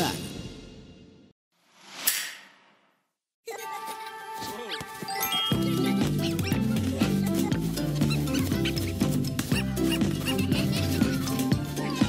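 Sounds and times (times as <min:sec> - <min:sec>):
upbeat commercial jingle music: 0:05.0 - 0:12.0.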